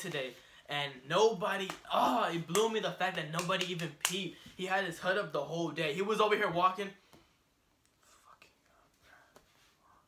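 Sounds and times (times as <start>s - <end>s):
faint whispering: 8.0s - 10.0s.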